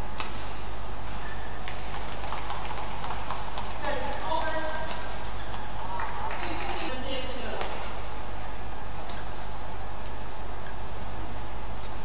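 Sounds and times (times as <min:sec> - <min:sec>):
racket hitting shuttlecock: 0:01.6 - 0:07.0, 0:07.6 - 0:08.0.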